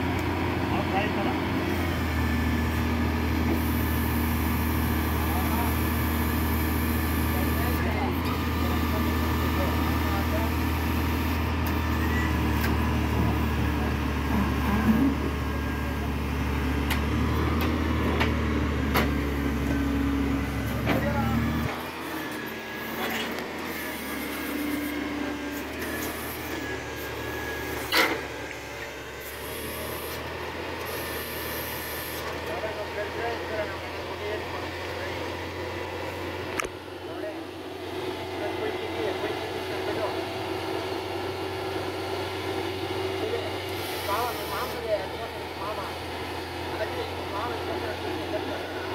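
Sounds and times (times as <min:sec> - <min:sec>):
truck engine hum: 0:00.0 - 0:48.9.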